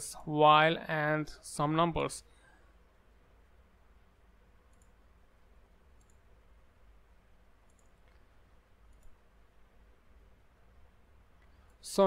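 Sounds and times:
low room hum: 0.0s - 12.0s
computer mouse clicks: 4.6s - 5.0s, 5.9s - 6.3s, 7.6s - 9.2s.

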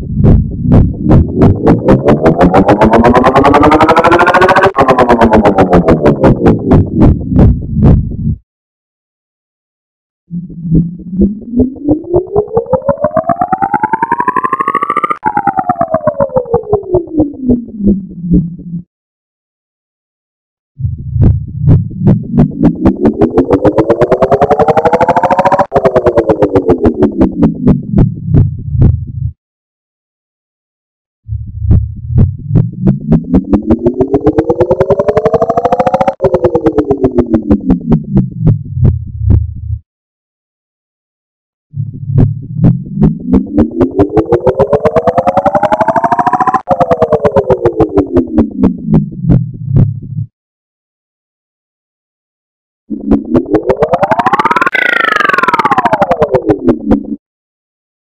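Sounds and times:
low electronic drone: 0.0s - 8.4s, 10.3s - 18.8s, 20.8s - 29.3s, 31.3s - 39.8s, 41.7s - 50.3s, 52.9s - 57.2s.

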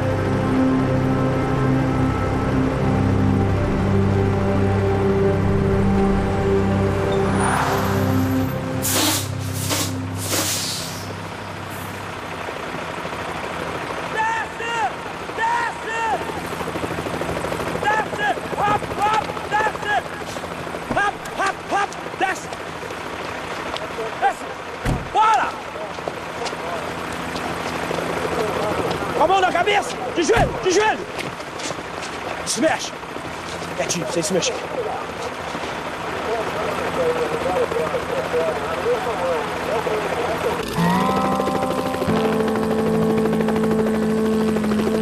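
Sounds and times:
tense music chord: 0.0s - 13.9s, 40.4s - 45.0s
truck air brakes hissing: 8.8s - 11.9s
men shouting commands: 14.1s - 16.4s, 17.8s - 20.2s, 20.9s - 22.5s.

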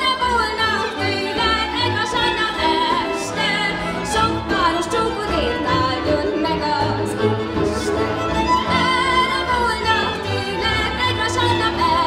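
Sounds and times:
double bass pulsing: 0.0s - 12.0s
fiddle melody with sliding notes: 0.0s - 12.0s
folk dance music by string band: 0.0s - 12.0s.

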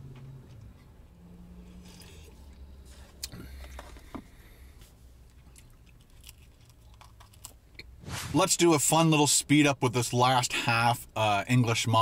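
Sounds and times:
low steady hum: 0.0s - 12.0s
chewing with mouth clicks: 5.2s - 7.9s.

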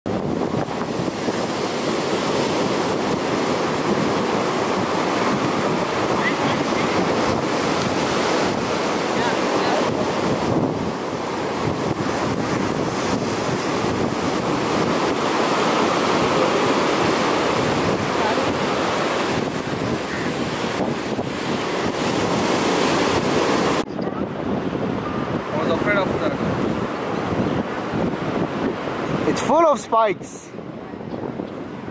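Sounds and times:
waves breaking: 0.1s - 31.9s
wind buffeting microphone: 0.1s - 31.9s.

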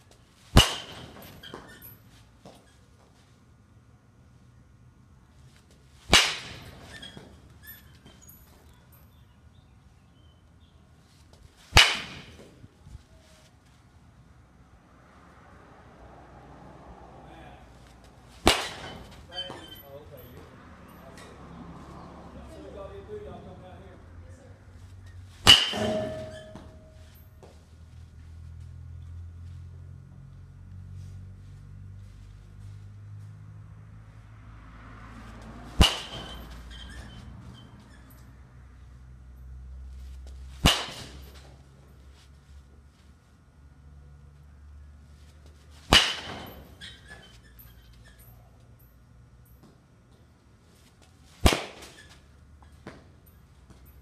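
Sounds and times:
low steady hum: 0.0s - 34.4s
baseball bat striking ball: 0.5s - 1.8s, 6.1s - 8.1s, 11.7s - 12.7s, 18.3s - 19.8s, 25.4s - 27.2s, 35.4s - 37.2s, 40.6s - 41.6s, 45.8s - 47.4s, 51.4s - 52.1s.

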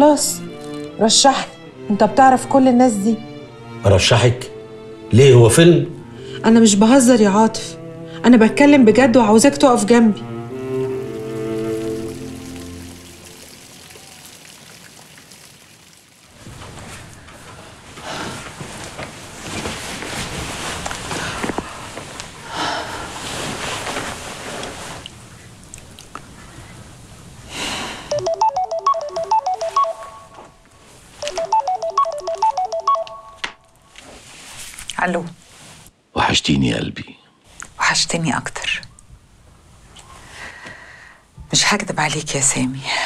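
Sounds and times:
low held string notes: 0.0s - 14.0s
fountain water trickling and splashing: 10.9s - 16.4s
phone ringtone melody: 28.1s - 30.4s, 31.2s - 33.4s.

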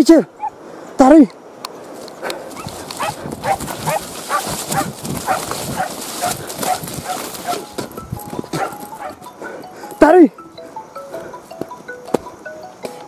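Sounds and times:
steady rustling hiss: 0.0s - 13.0s
dogs barking rapidly: 2.4s - 7.7s, 8.6s - 9.2s.

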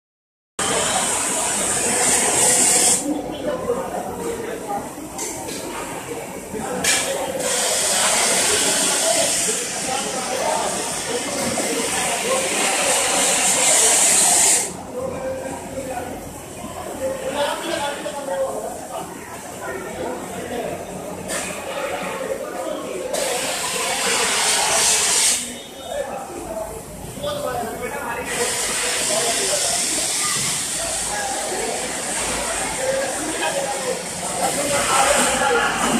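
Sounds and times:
steam hissing: 0.6s - 3.2s, 6.8s - 14.8s, 23.1s - 25.6s, 28.2s - 35.9s.

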